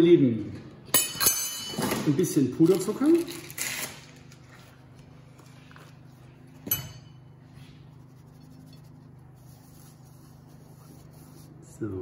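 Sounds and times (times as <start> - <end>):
steady low hum: 3.4 - 12.0.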